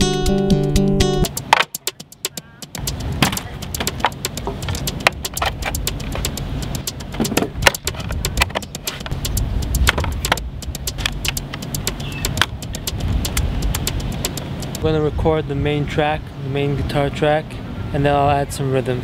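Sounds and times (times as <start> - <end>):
steady low rumble: 2.4 - 16.2.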